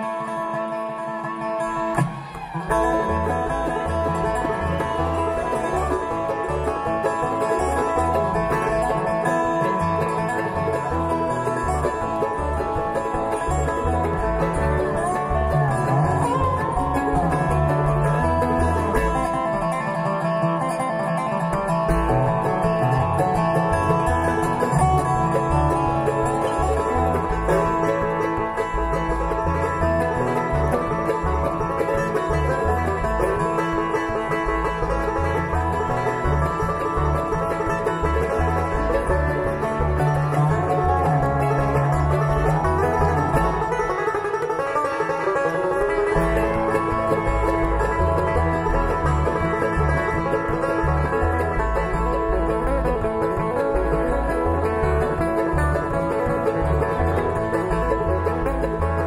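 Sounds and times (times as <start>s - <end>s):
acoustic guitar: 0.0s - 59.0s
banjo: 0.0s - 59.0s
mandolin: 0.0s - 59.0s
resonator guitar: 0.0s - 59.0s
upright bass: 1.5s - 59.0s.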